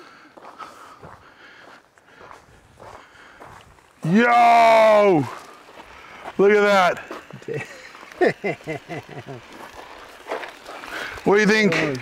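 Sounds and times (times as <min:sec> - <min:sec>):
outdoor background noise: 0:00.0 - 0:12.0
man laughing: 0:07.3 - 0:09.6.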